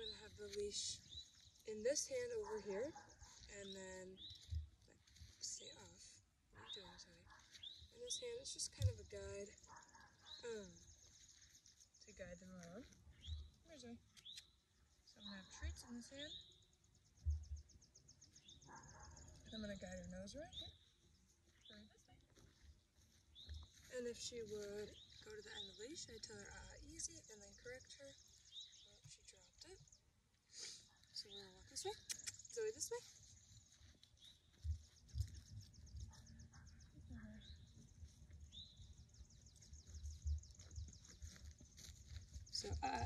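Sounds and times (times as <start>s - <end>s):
footsteps on grass: 3.3s - 6.0s, 21.5s - 25.8s, 33.0s - 36.3s, 37.7s - 43.0s.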